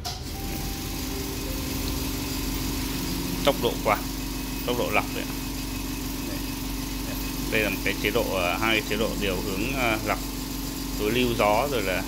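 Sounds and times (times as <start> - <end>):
air purifier fan hum: 0.0 - 12.0
air rushing through unit: 0.0 - 12.0.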